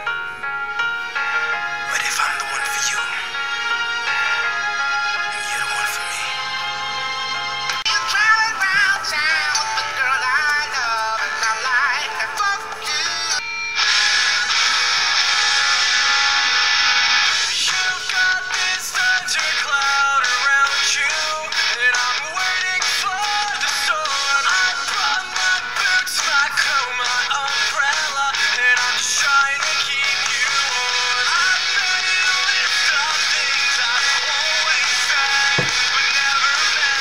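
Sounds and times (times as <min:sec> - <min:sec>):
thin pop song with vocals: 0:00.0 - 0:37.0.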